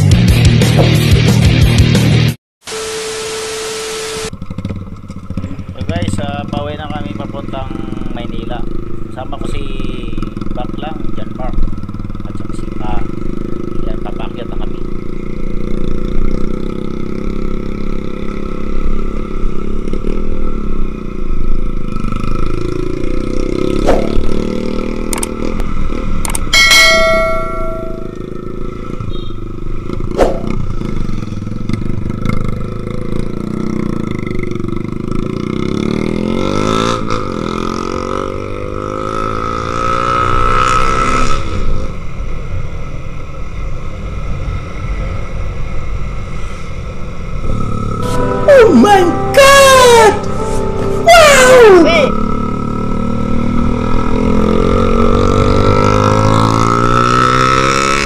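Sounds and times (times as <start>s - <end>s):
high horn-like tone: 2.7s - 4.3s, 47.5s - 52.8s
motorcycle engine running: 4.3s - 40.6s, 46.8s - 48.5s, 51.1s - 58.0s.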